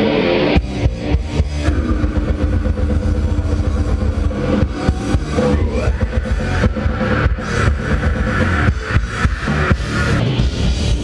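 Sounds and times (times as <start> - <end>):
live heavy metal music: 0.0 - 11.0.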